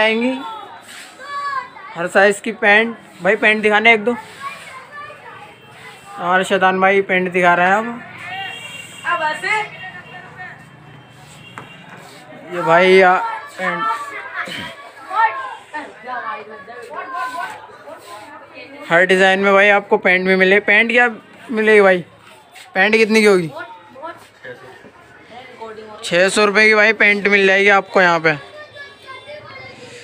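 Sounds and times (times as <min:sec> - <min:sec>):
murmur of voices in a shop: 0:00.0 - 0:30.0.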